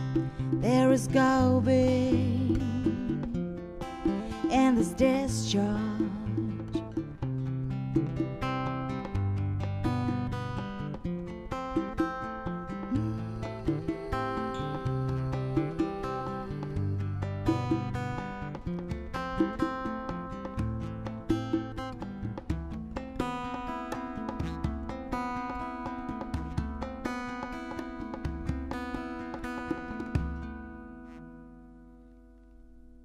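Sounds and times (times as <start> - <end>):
acoustic guitar playing: 0.0 - 33.0.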